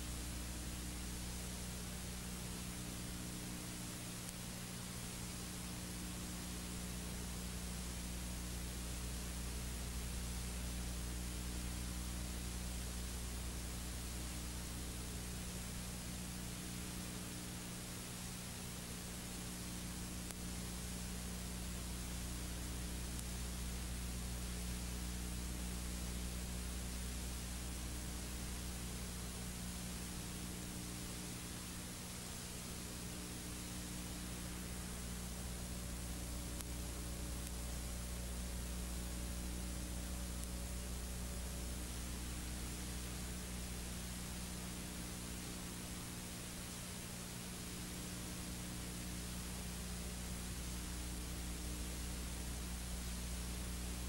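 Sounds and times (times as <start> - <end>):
low electrical hum: 0.0 - 54.0
static hiss: 0.0 - 54.0.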